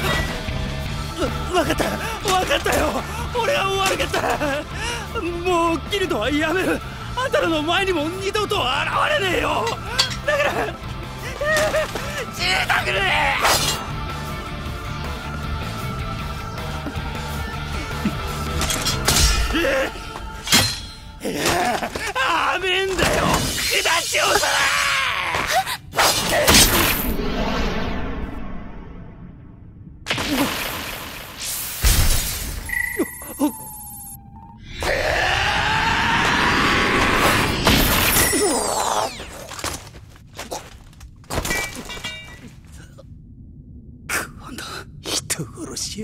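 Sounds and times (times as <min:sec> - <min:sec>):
low background music: 0:00.0 - 0:23.4.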